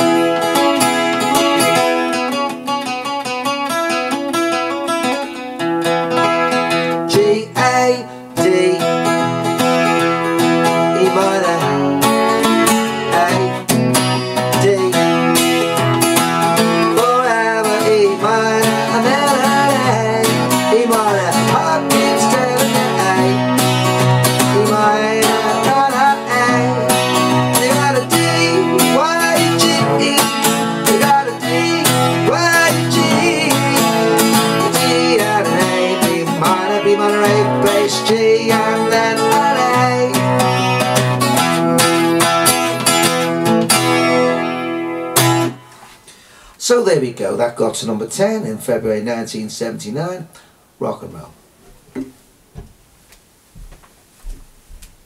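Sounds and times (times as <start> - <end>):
acoustic guitar rock and roll rhythm: 0.0 - 52.2.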